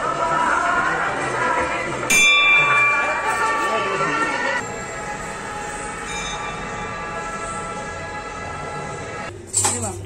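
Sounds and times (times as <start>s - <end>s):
music playing: 0.0s - 10.0s
bell ringing: 2.1s - 7.9s.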